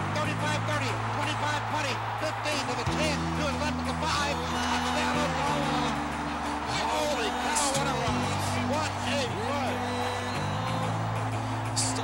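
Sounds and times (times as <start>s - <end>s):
sportscaster commentary: 0.0s - 12.0s.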